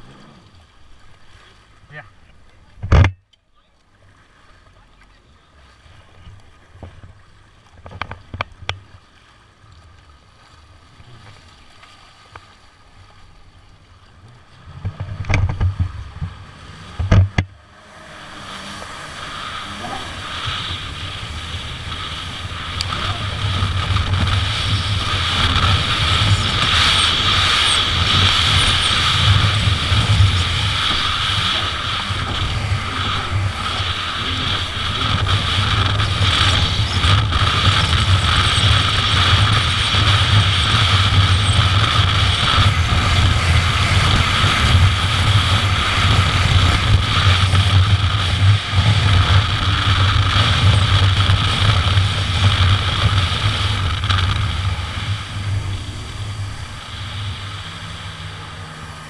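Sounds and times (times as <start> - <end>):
jet ski engine running hard: 0.0 - 3.1, 4.0 - 59.0.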